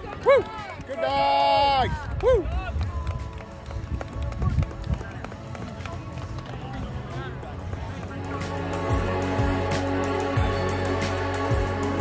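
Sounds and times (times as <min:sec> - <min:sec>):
background music: 0:00.0 - 0:12.0.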